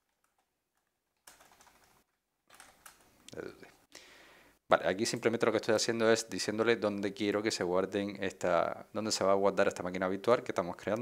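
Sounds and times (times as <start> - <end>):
faint keyboard typing: 0.0 - 3.6.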